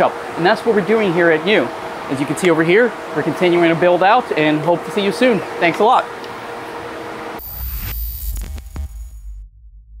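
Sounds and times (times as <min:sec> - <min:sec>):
machinery hum with steady tones: 0:00.0 - 0:09.2
high ringing tone: 0:07.4 - 0:09.3
logo sting with deep rumble: 0:07.4 - 0:10.0
sharp hits: 0:07.4 - 0:10.0.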